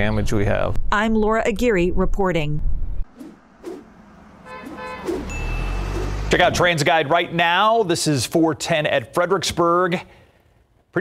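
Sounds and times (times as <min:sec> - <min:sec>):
car horn honking: 0:03.9 - 0:06.3.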